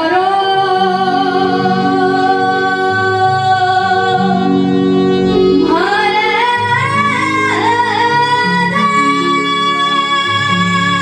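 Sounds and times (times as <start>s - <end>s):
amplified backing music: 0.0s - 11.0s
woman singing into a microphone: 0.0s - 11.0s.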